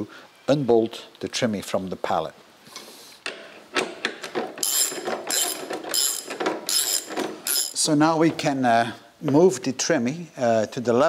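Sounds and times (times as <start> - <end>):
ratchet wrench clicking: 4.6 - 7.8.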